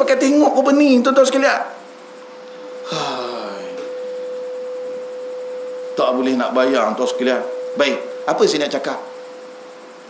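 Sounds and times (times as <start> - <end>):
microphone feedback tone: 1.7 - 10.0.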